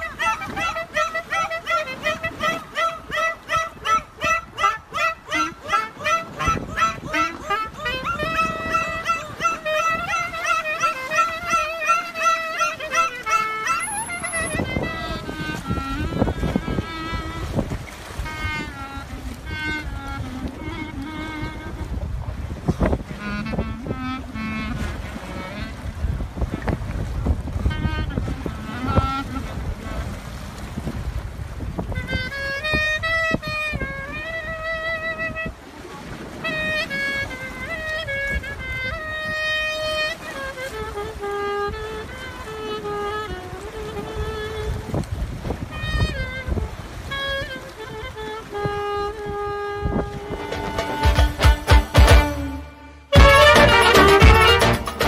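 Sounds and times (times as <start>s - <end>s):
clarinet bending notes: 0.0s - 30.4s, 31.7s - 55.0s
water noise: 0.0s - 55.0s
wind rumble on microphone: 0.0s - 55.0s.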